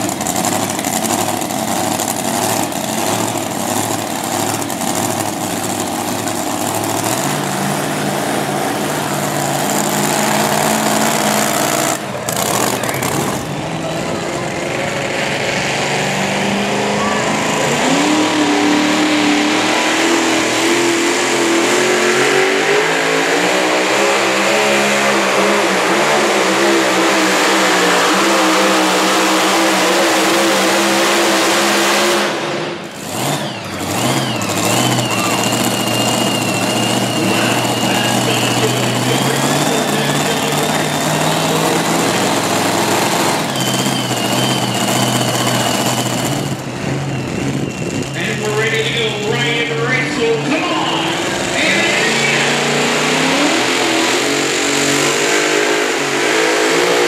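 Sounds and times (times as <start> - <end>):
engine idling: 0.0 - 15.1, 32.3 - 55.1
supercharged engine revving: 0.0 - 57.0.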